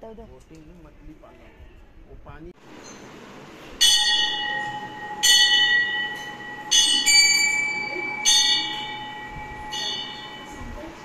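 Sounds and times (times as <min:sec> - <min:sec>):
metal bell ringing: 0:03.8 - 0:11.0.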